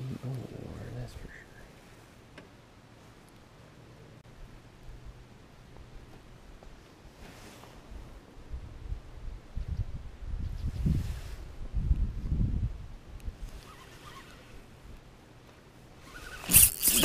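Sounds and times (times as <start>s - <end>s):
rain jacket rustle and swish: 7.2s - 7.9s.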